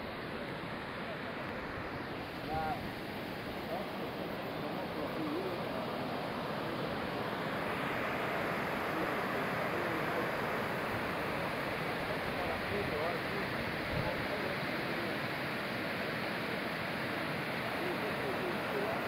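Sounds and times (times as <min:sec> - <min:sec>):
river rapids rushing over boulders: 0:00.0 - 0:19.0.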